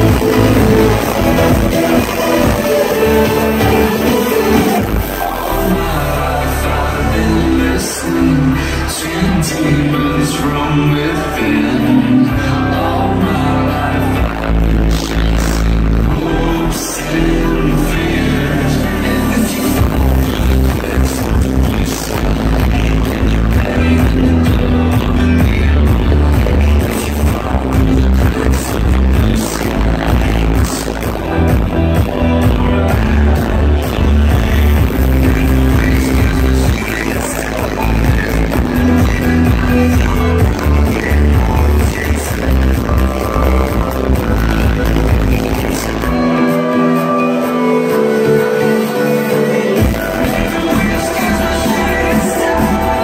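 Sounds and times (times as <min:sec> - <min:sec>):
electronic dance music: 0:00.0 - 0:53.0.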